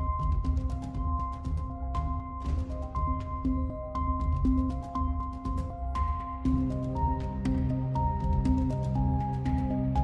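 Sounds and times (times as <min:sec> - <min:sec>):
light percussion: 0:00.0 - 0:10.0.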